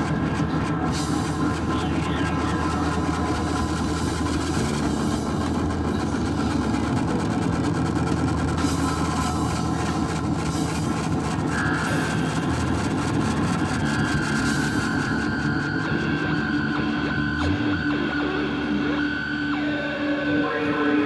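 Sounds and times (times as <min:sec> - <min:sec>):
electric guitar and bass drone: 0:00.0 - 0:21.0.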